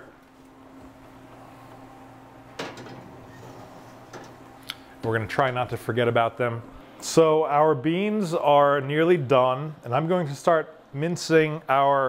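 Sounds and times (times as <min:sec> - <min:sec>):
low steady hum: 0:00.0 - 0:12.0
oven door clunk: 0:02.5 - 0:04.4
dish sliding onto oven rack: 0:02.6 - 0:04.5.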